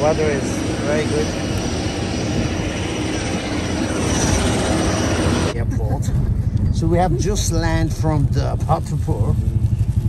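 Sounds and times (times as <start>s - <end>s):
jet engine hiss and whine: 0.0s - 10.0s.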